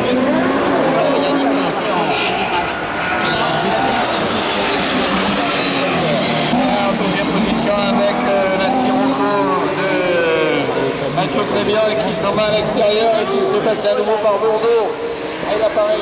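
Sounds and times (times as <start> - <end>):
racing car engine revving: 0.0 - 16.0.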